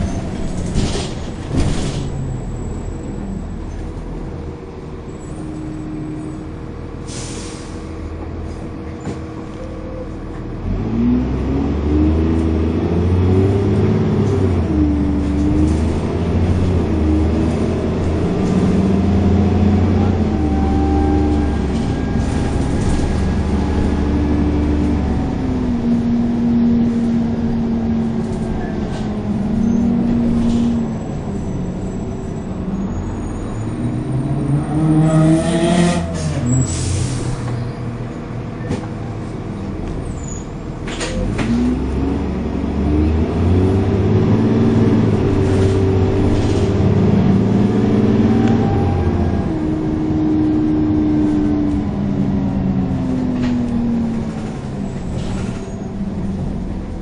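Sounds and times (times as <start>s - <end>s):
bus diesel engine: 0.0s - 57.0s
short air hisses: 7.1s - 7.9s.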